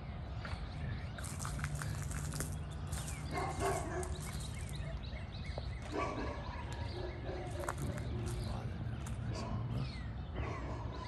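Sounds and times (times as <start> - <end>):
small birds chirping: 0.0 - 11.0.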